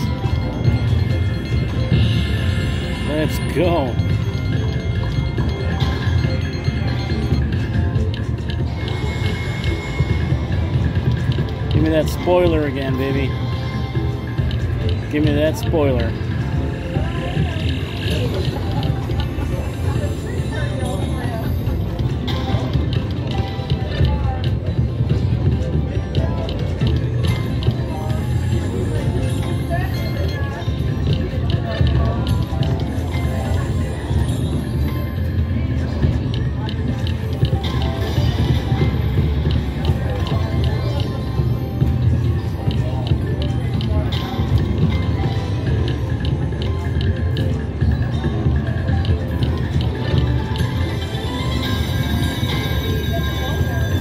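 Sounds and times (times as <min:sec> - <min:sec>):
casino crowd chatter: 0:00.0 - 0:54.0
slot machine bonus music: 0:00.0 - 0:54.0
slot machine clicks and chimes: 0:00.0 - 0:54.0.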